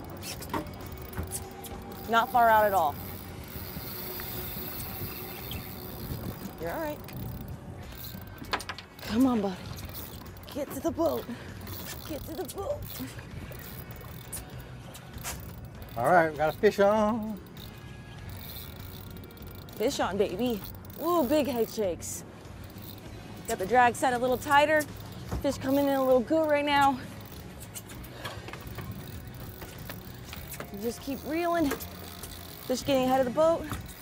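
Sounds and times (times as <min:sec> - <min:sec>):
boat engine idling: 0:00.0 - 0:34.0
water noise: 0:00.0 - 0:34.0
wind: 0:00.0 - 0:34.0.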